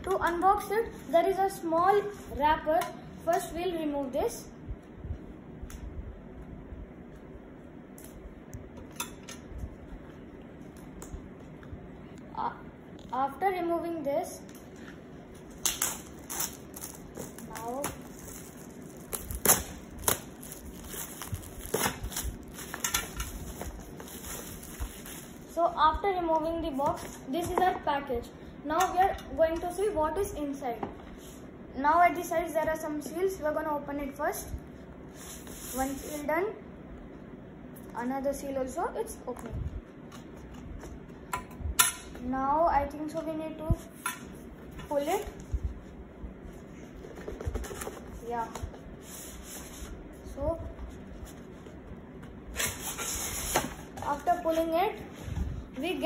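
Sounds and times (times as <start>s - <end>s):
plastic wrapping crackling: 15.6s - 25.6s.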